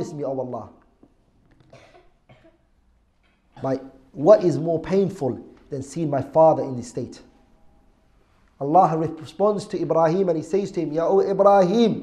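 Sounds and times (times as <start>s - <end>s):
faint cough: 1.6s - 2.8s, 3.5s - 3.9s.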